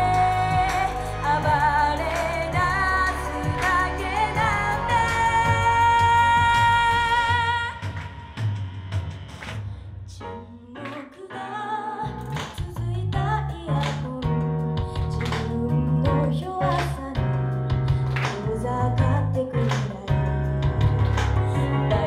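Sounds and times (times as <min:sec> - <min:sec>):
guitar: 0:00.0 - 0:07.2, 0:12.2 - 0:22.0
bass guitar: 0:00.0 - 0:08.0, 0:12.2 - 0:22.0
woman singing into a microphone: 0:00.0 - 0:08.0, 0:10.1 - 0:22.0
drums: 0:00.0 - 0:10.4, 0:12.3 - 0:22.0.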